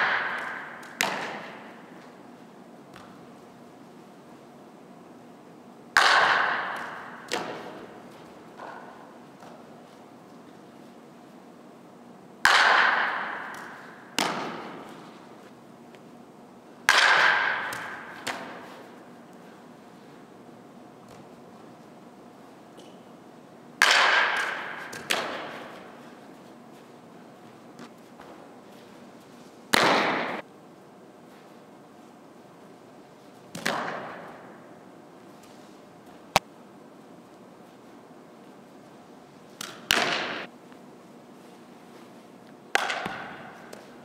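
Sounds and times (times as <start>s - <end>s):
softball impact smack: 0.0s - 1.7s, 6.0s - 7.8s, 12.4s - 14.8s.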